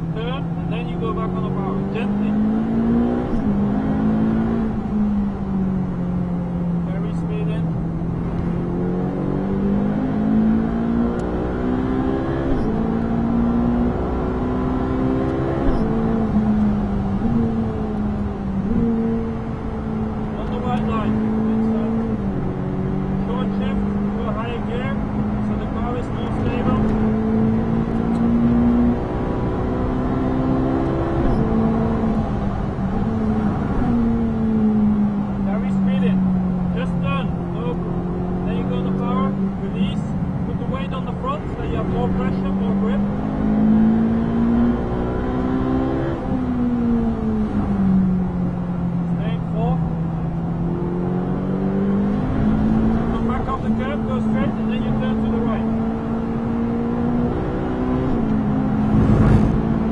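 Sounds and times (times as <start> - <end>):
car engine at speed: 0.0 - 59.9.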